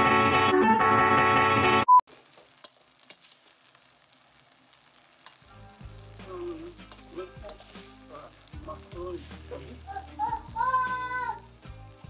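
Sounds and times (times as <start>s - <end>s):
pasta sizzling in a pot: 2.1s - 12.0s.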